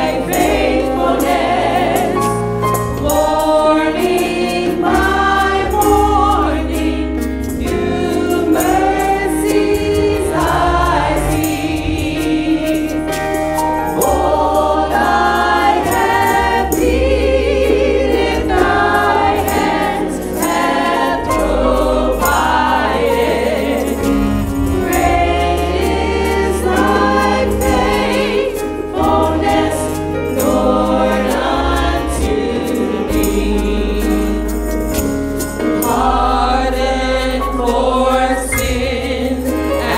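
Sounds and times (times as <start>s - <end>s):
bass accompaniment: 0.0s - 39.9s
choir singing gospel song: 0.0s - 39.9s.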